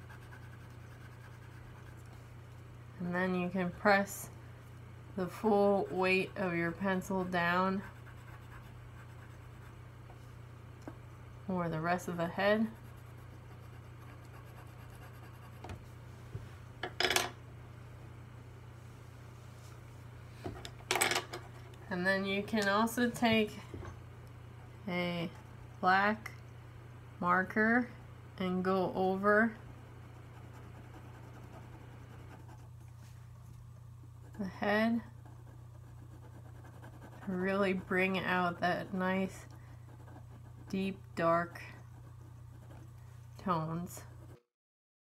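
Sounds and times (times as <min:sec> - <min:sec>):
pencil scratching on paper: 0:00.0 - 0:02.1, 0:05.5 - 0:09.8, 0:12.5 - 0:15.8, 0:30.1 - 0:32.8, 0:34.2 - 0:42.9
steady low hum: 0:00.0 - 0:44.5
pencils clattering on a table: 0:16.9 - 0:17.4, 0:20.9 - 0:21.4.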